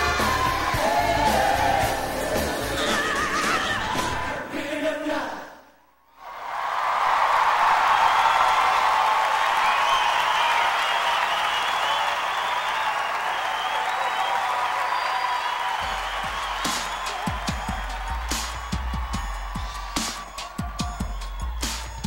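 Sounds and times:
audience applauding and cheering: 0.0s - 4.2s, 6.2s - 22.0s.

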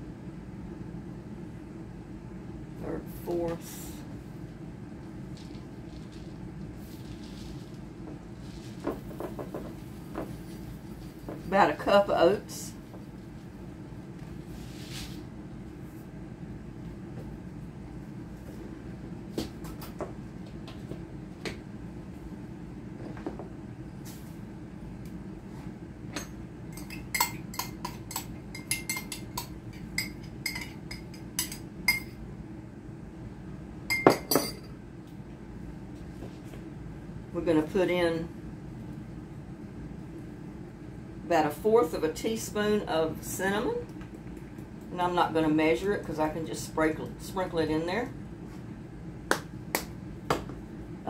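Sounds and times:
whisk clinking against glass: 26.2s - 32.2s.

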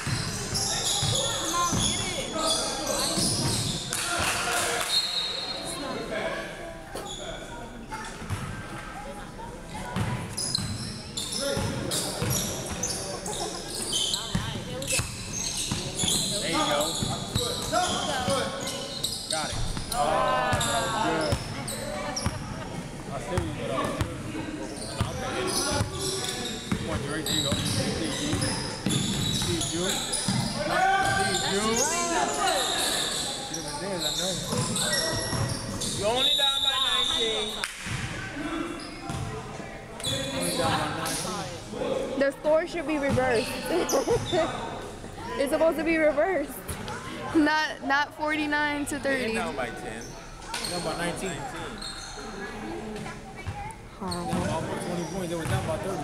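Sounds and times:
basketball bouncing on court: 0.0s - 2.1s, 10.0s - 10.8s, 11.6s - 12.8s, 26.7s - 29.6s, 34.5s - 36.0s, 39.1s - 39.3s, 43.0s - 43.3s, 54.3s - 54.6s, 55.4s - 55.8s
sneakers squeaking: 0.0s - 6.1s, 6.9s - 8.8s, 9.8s - 41.5s, 42.2s - 47.5s, 48.8s - 56.0s.

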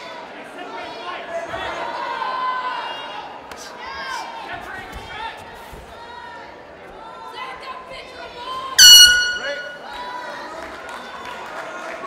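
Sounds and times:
loud high horn blast: 8.8s - 9.8s.

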